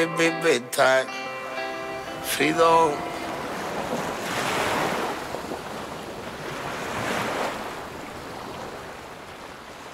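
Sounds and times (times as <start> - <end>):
ocean waves washing: 0.0 - 9.9.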